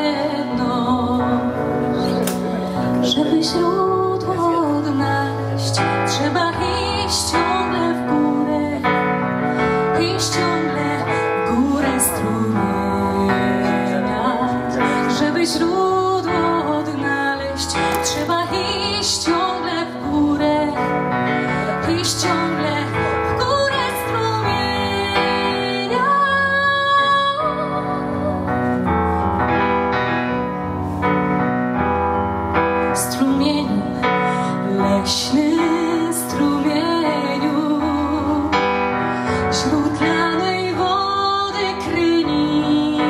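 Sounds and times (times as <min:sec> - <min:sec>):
woman singing slow song: 0:00.0 - 0:28.9, 0:33.0 - 0:43.0
electronic keyboard piano: 0:00.0 - 0:43.0.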